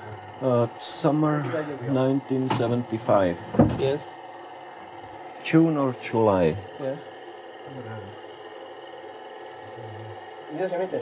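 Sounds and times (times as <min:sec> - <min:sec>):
faint low murmurs: 0:00.0 - 0:11.0
steady background hum: 0:00.0 - 0:11.0.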